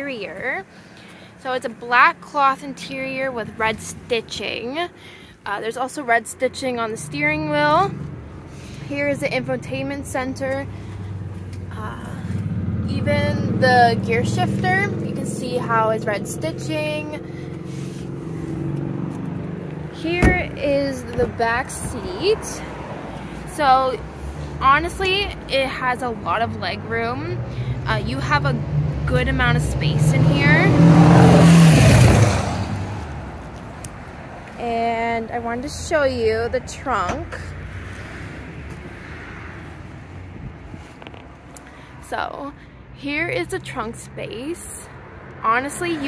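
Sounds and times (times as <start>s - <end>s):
car engine idling: 6.5s - 44.4s.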